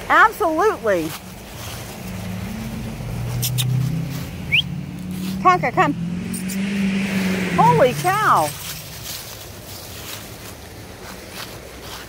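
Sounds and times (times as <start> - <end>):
vehicle engine droning: 0.0 - 12.0
short rising chirp: 3.4 - 4.9.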